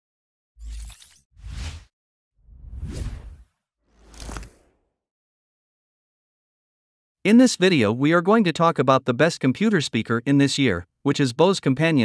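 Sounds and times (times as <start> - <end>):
whoosh sound effect: 2.5 - 4.8.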